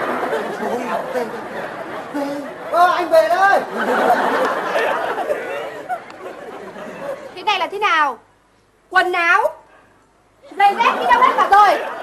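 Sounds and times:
murmur of overlapping voices: 0:00.0 - 0:12.0.

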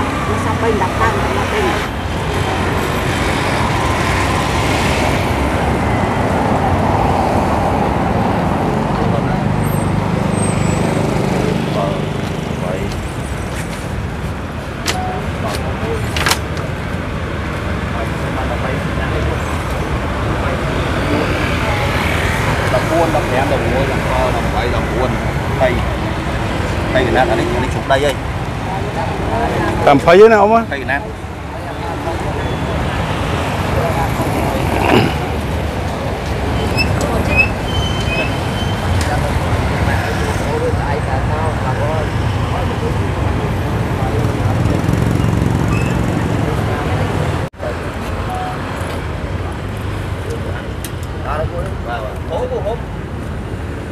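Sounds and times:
people talking: 0:00.0 - 0:02.0, 0:08.6 - 0:10.5, 0:11.2 - 0:13.0, 0:17.9 - 0:26.1, 0:26.8 - 0:45.2, 0:50.2 - 0:52.9
street traffic rumble: 0:00.0 - 0:53.9.

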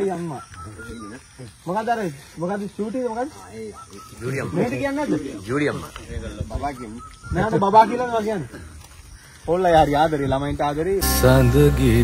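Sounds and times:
people talking: 0:00.0 - 0:08.6, 0:09.5 - 0:12.0.

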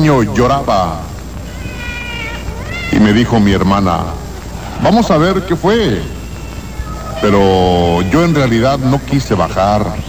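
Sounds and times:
radio hiss: 0:00.0 - 0:10.0
baby crying: 0:01.3 - 0:05.0, 0:05.8 - 0:08.9.

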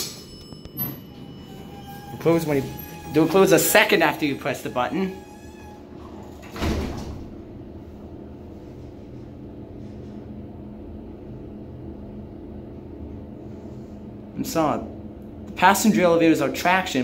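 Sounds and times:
elevator humming: 0:00.0 - 0:17.0
elevator doors closing thud: 0:00.2 - 0:07.8.

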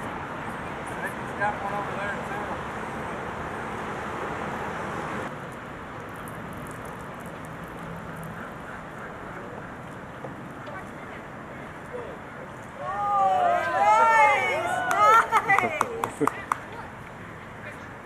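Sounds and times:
outdoor background noise: 0:00.0 - 0:18.0.

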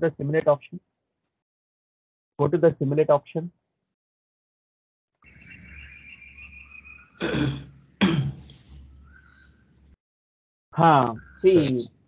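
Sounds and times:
person coughing: 0:07.2 - 0:08.5.

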